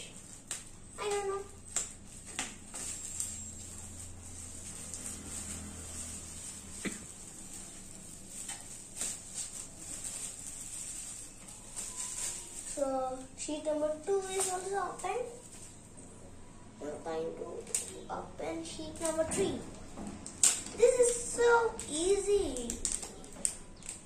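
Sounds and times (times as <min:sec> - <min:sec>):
plastic bags being handled: 0:00.0 - 0:16.0, 0:18.7 - 0:24.0.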